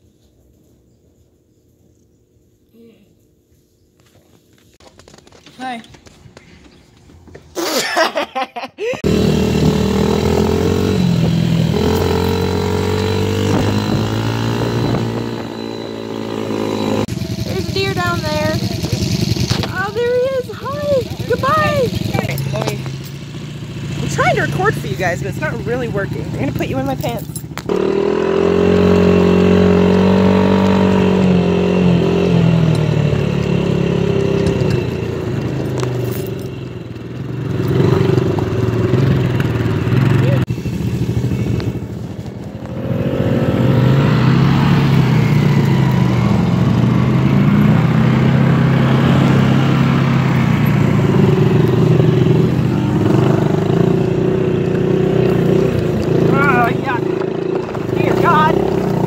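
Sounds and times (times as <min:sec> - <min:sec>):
dirt bike engine revving: 0:09.0 - 0:59.0.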